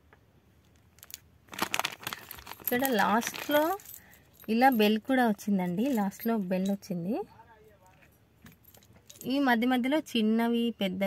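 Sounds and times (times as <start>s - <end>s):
small metal bell jingling: 2.1s - 7.2s, 7.9s - 9.5s
light clinks: 7.9s - 9.4s.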